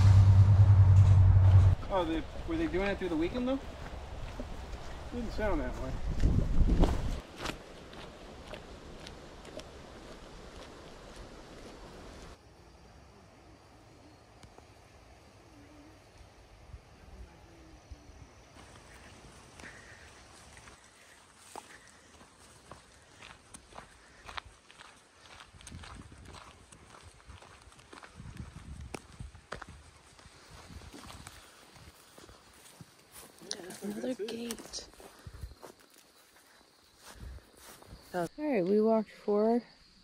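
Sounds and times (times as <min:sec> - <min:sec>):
outdoor background noise: 0:00.0 - 0:40.0
footsteps on sandy dirt trail: 0:01.5 - 0:12.4, 0:18.6 - 0:38.4.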